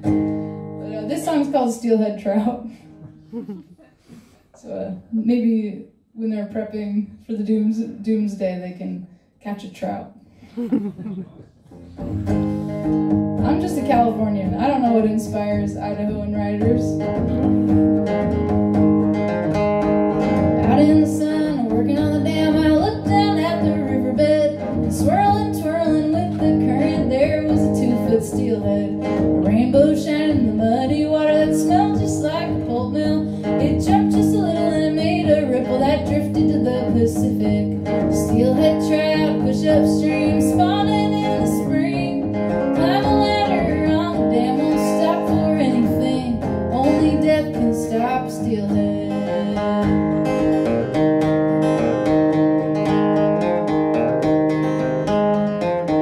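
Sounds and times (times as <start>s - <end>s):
woman singing folk song: 0.0s - 3.0s, 12.2s - 18.5s, 20.2s - 50.7s
acoustic guitar strumming: 0.0s - 3.8s, 10.6s - 56.0s.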